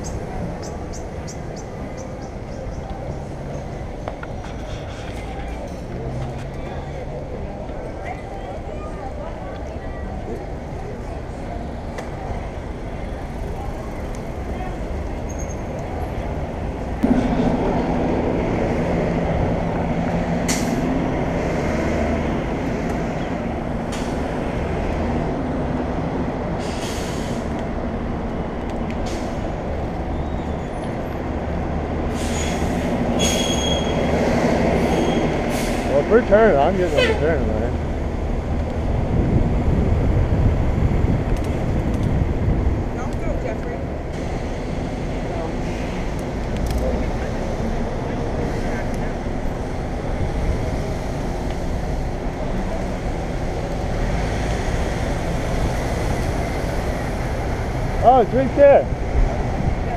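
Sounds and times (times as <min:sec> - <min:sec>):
low hum of nearby traffic: 0:00.0 - 0:59.9
wind and road noise: 0:00.0 - 0:59.9.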